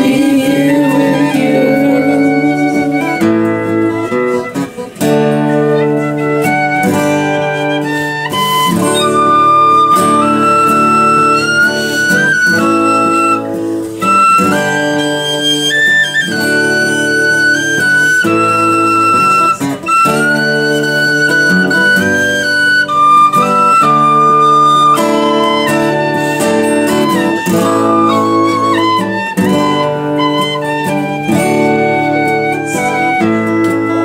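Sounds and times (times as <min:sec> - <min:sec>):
end-blown flute melody: 0:00.0 - 0:04.9, 0:05.7 - 0:34.0
acoustic guitar chords: 0:00.0 - 0:34.0.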